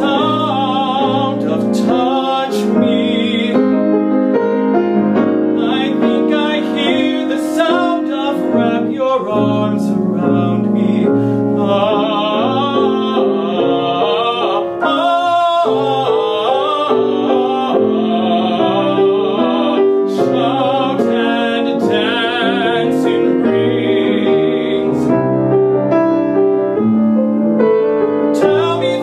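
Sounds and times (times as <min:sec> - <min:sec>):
man singing operatically: 0:00.0 - 0:04.0, 0:05.5 - 0:25.4, 0:28.3 - 0:29.0
piano: 0:00.0 - 0:29.0.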